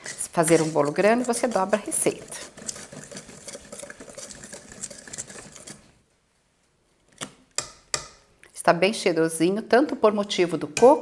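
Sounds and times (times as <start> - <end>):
wire whisk scraping metal bowl: 0.0 - 5.9.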